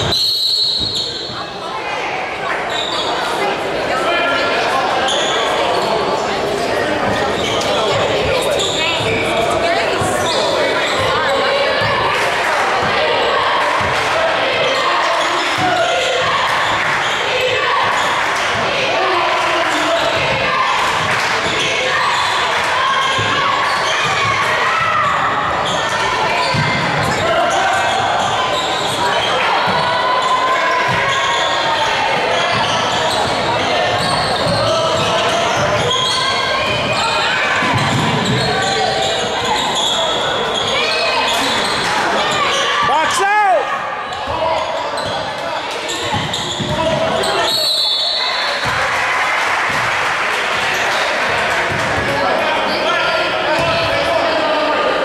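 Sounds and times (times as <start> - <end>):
people talking and calling out: 0.0 - 55.0.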